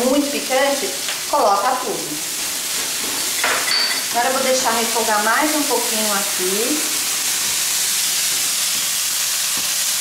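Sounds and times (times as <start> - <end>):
vegetables sizzling in a wok: 0.0 - 10.0.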